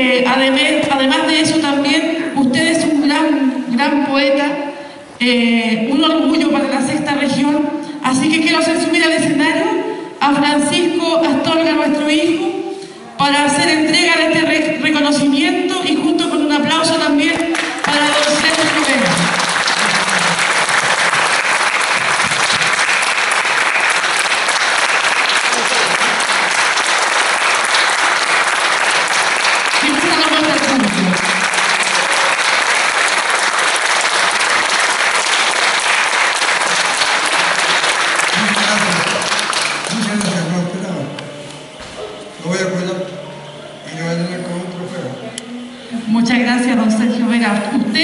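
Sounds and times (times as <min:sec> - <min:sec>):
audience applauding: 0:17.5 - 0:40.6.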